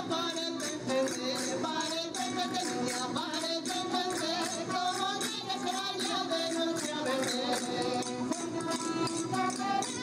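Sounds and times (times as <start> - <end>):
rhythmic percussion beat: 0.0 - 10.0
voices singing: 0.0 - 10.0.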